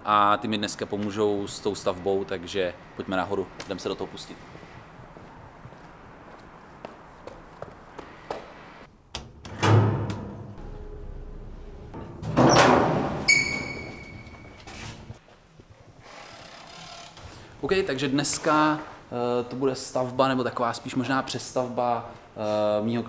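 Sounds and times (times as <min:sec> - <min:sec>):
elevator doors sliding: 0:09.3 - 0:15.2
door shutting heavily: 0:09.4 - 0:10.7, 0:12.0 - 0:14.5.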